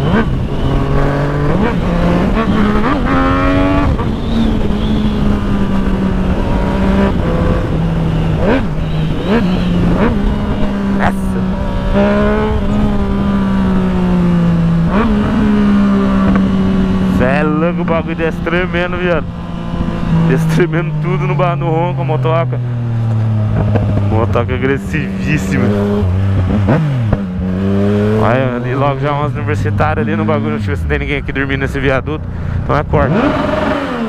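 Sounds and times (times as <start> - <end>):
motorcycle engine running: 0.0 - 34.0
wind on microphone: 23.4 - 24.3.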